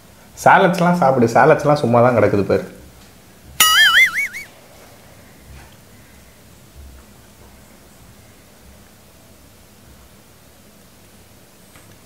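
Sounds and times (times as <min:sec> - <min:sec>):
high-pitched warbling sound effect: 0:03.6 - 0:04.5.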